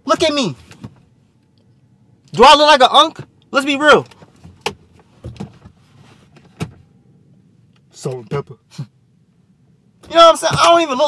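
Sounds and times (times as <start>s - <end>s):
soft knocks and rustles in car: 0.2s - 1.2s, 4.0s - 7.0s, 10.0s - 10.9s.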